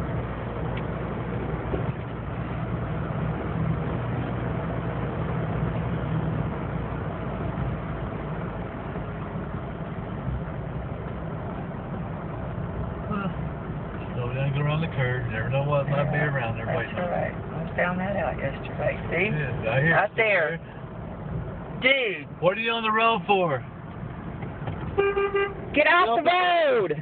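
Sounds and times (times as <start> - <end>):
road and engine noise inside car: 0.0 - 27.0.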